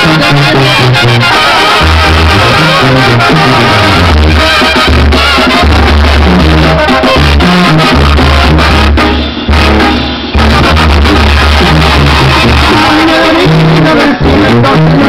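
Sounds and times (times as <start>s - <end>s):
drum kit: 0.0s - 15.0s
trumpets and clarinets melody: 0.0s - 15.0s
tuba bass line: 0.0s - 15.0s.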